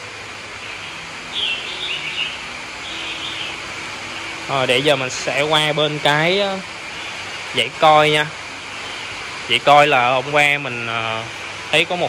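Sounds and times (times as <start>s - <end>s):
air filters hissing and bubbling: 0.0s - 12.0s
short high bird calls: 0.6s - 4.5s.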